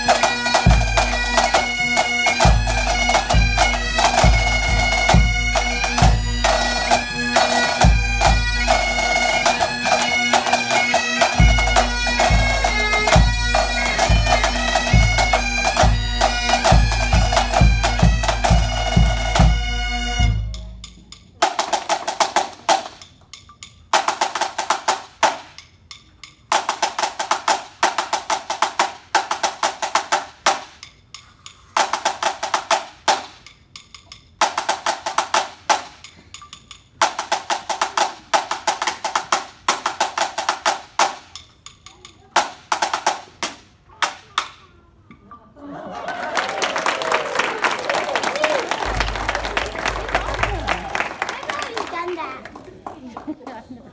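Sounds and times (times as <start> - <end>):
bagpipes playing march: 0.0 - 20.6, 48.8 - 51.0
pipe band drums: 0.0 - 44.6, 48.4 - 52.3
snare drum rolls: 31.8 - 33.5.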